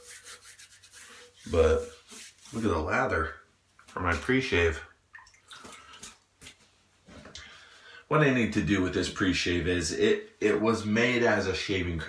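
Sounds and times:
wet clicks and rustles: 5.1s - 7.5s.

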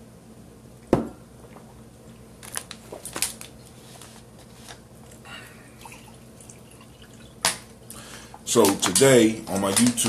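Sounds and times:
water pouring into a glass: 5.8s - 7.4s.

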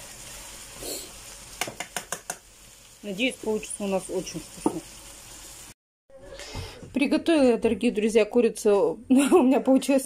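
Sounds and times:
food sizzling in a frying pan: 0.0s - 5.8s.

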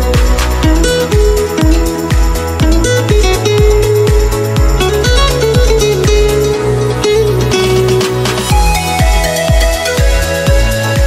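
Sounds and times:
electronic music with kick drum: 0.0s - 11.0s.

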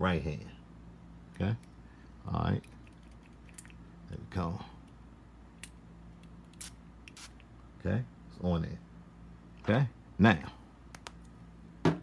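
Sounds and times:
spray bottle spritzing: 6.5s - 7.4s.

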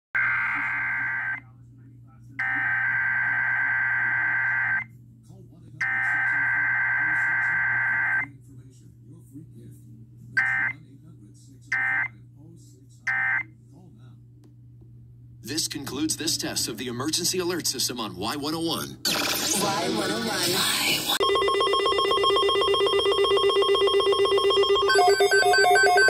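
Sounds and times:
low steady hum: 0.2s - 19.1s
digital data bursts from radio: 19.1s - 21.2s.

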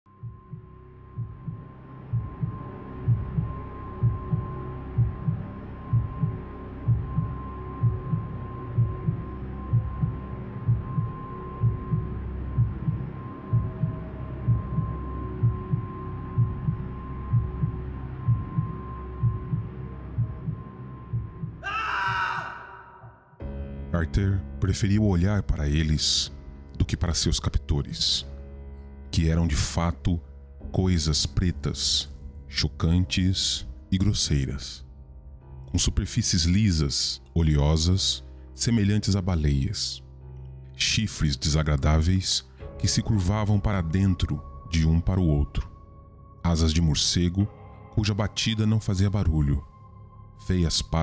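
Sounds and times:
heartbeat pulse of low thumps: 0.1s - 21.7s.

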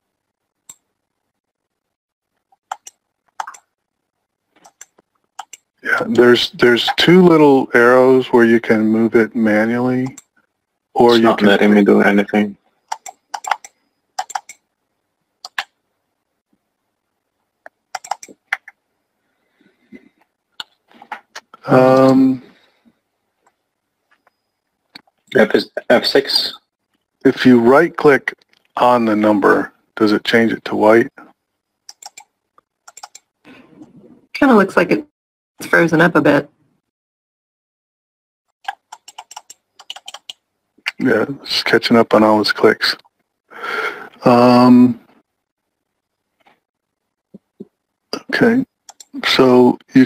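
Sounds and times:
computer keyboard keystrokes: 2.7s - 3.6s, 4.6s - 5.6s, 12.9s - 14.6s, 15.5s - 15.7s, 17.9s - 18.7s, 31.9s - 32.3s, 32.9s - 33.3s, 38.7s - 40.4s.

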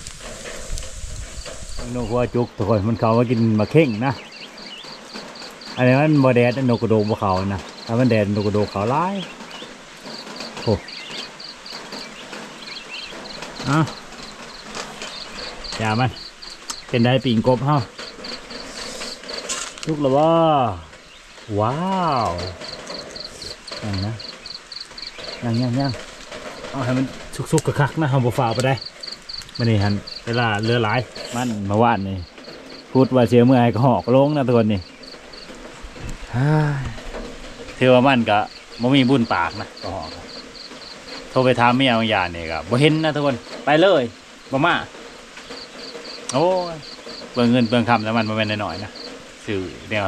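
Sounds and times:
insect chirping: 0.0s - 50.0s.

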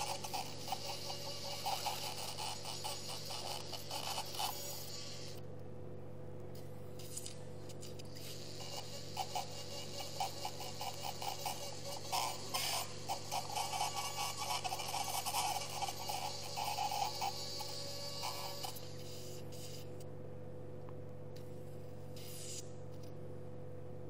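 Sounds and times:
low electrical hum: 0.0s - 24.0s.

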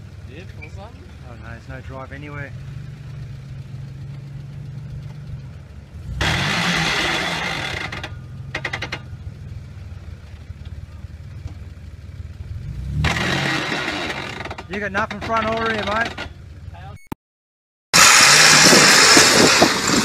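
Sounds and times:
engine idling and revving: 0.0s - 17.0s, 18.0s - 20.0s.

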